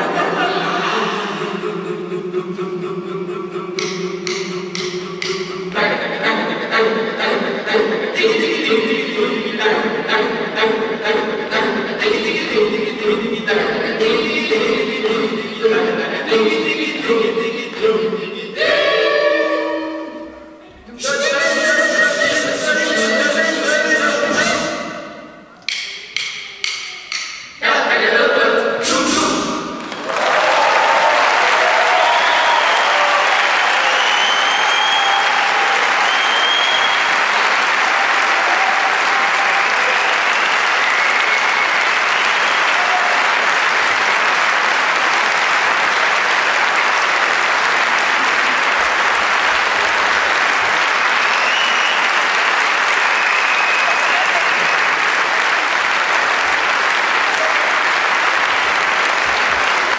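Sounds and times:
audience applauding: 29.8s - 59.9s.

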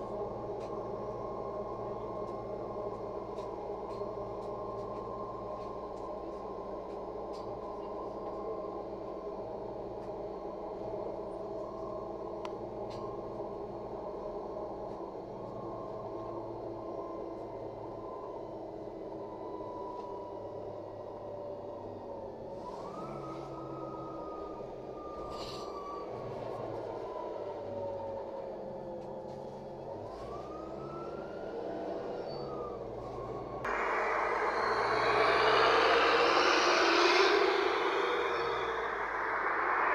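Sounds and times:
bus engine droning: 0.0s - 39.9s.

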